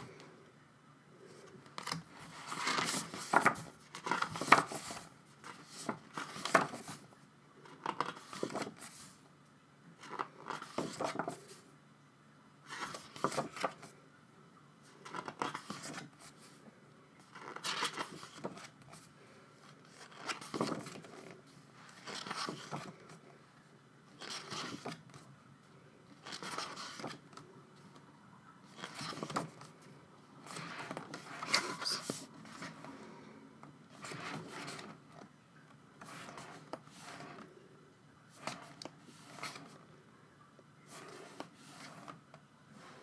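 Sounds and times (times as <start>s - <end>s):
book pages turning: 1.4s - 9.2s, 10.0s - 11.6s, 12.7s - 13.9s, 15.0s - 16.6s, 17.2s - 23.2s, 24.1s - 25.3s, 26.2s - 27.5s, 28.6s - 29.8s, 30.4s - 33.0s, 33.9s - 35.3s, 36.0s - 37.6s, 38.3s - 39.9s, 40.9s - 43.0s.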